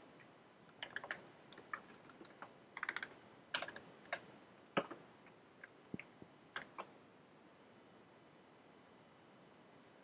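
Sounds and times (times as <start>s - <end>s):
computer keyboard typing: 0.8s - 4.3s.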